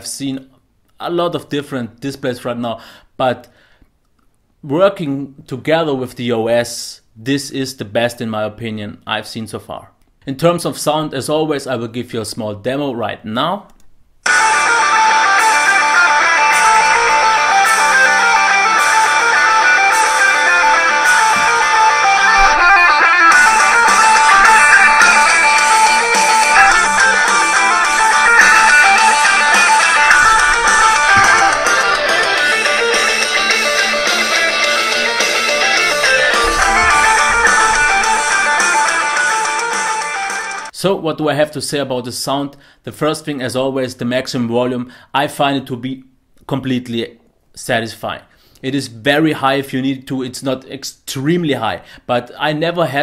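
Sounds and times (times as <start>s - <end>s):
rock music through laptop speakers: 14.2s - 40.7s.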